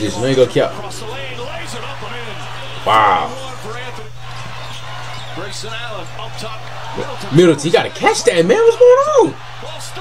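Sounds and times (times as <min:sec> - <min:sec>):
commentator talking: 0:00.0 - 0:04.1, 0:05.4 - 0:10.0.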